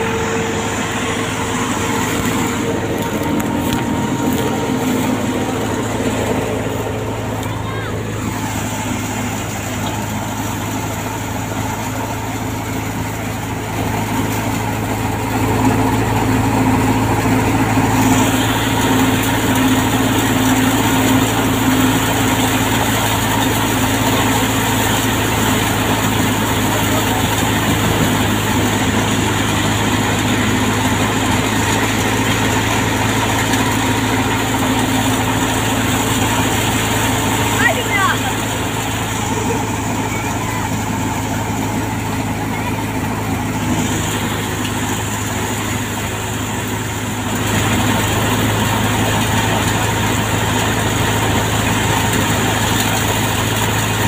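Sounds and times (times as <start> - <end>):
wheat thresher running: 0.0 - 54.0.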